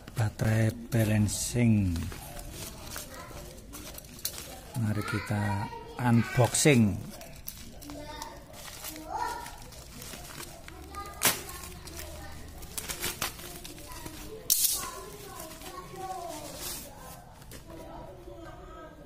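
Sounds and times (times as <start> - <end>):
plastic bag crinkling: 0.0 - 17.8
knife slitting plastic bag: 2.1 - 4.8, 6.4 - 17.3.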